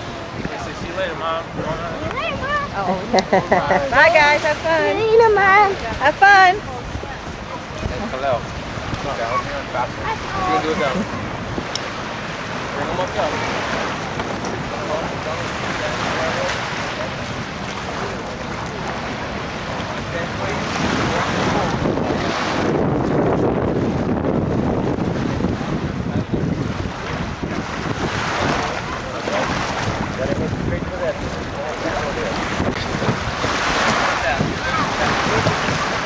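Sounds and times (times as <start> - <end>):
small waves on sandy beach: 0.0 - 36.0
wind buffeting microphone: 0.0 - 36.0.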